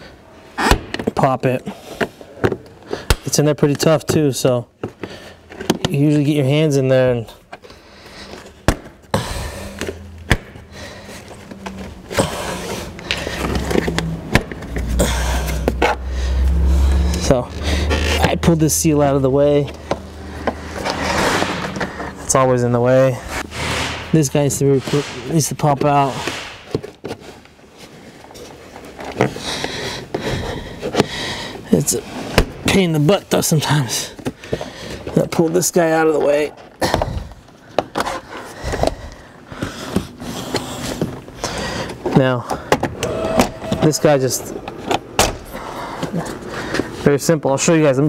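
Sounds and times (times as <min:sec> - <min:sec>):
rubber seal scraping and rustling: 0:07.4 - 0:16.0, 0:19.6 - 0:31.1, 0:37.4 - 0:47.1.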